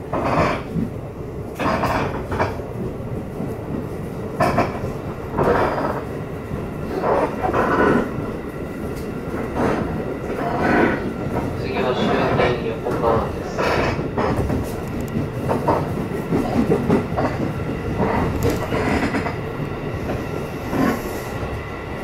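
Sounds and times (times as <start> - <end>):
train wheels rumbling on rail: 0.0 - 22.0
voices: 11.1 - 14.1.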